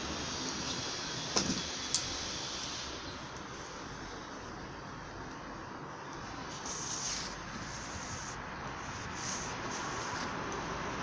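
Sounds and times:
cloth wiping car paint: 0:06.4 - 0:11.0.

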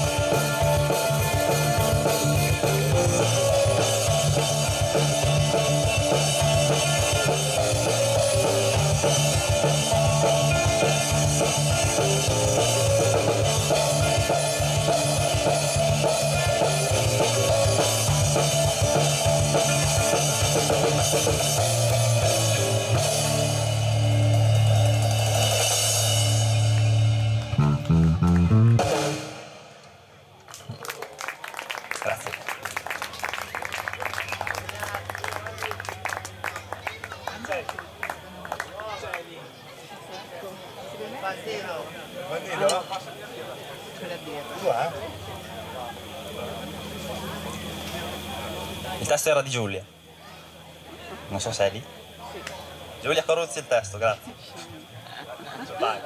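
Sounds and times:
rock band playing: 0:00.0 - 0:29.8.

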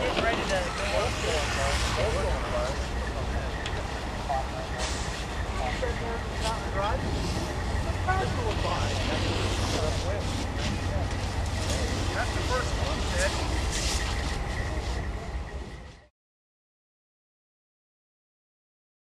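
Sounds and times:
fire hose spraying: 0:00.0 - 0:15.9
low engine rumble: 0:00.0 - 0:16.1.

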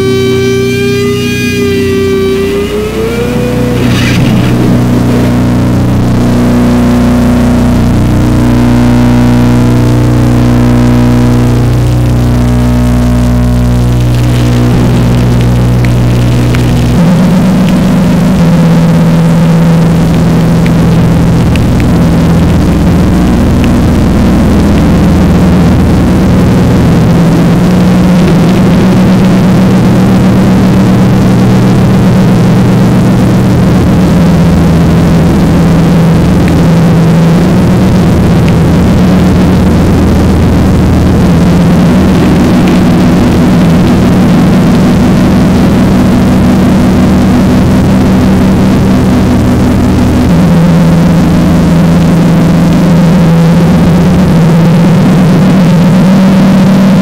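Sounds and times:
heavily distorted electric guitars: 0:00.0 - 0:57.0.

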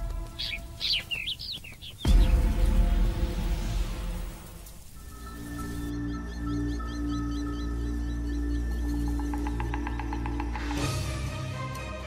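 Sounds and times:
background music: 0:00.0 - 0:12.0
bird chirping: 0:00.1 - 0:02.5, 0:05.0 - 0:10.8.

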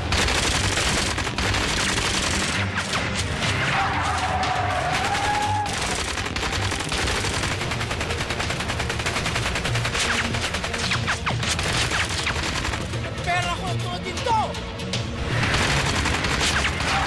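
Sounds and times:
automatic gunfire: 0:00.0 - 0:02.8, 0:04.9 - 0:13.0, 0:15.4 - 0:17.0.

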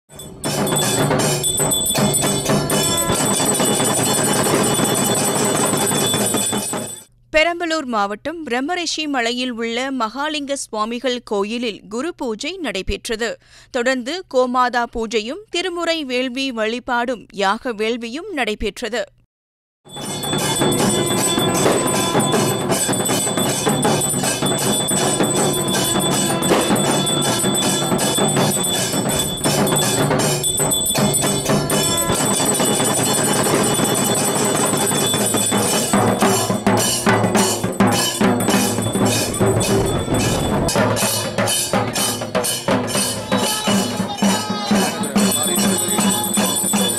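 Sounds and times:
bells ringing rapidly: 0:00.1 - 0:07.1, 0:19.9 - 0:46.9
fast steady percussion: 0:00.1 - 0:07.1, 0:19.9 - 0:46.9.

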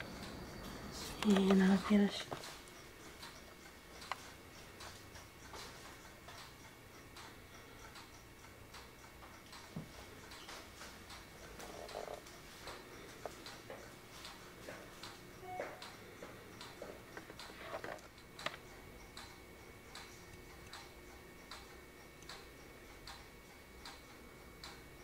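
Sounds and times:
low room hum: 0:00.0 - 0:25.0
wall clock ticking: 0:00.0 - 0:25.0.

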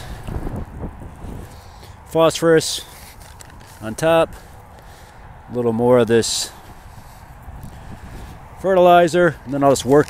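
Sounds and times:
low wind rumble on microphone: 0:00.0 - 0:10.0
fertilizer rustling onto soil: 0:01.4 - 0:05.2.

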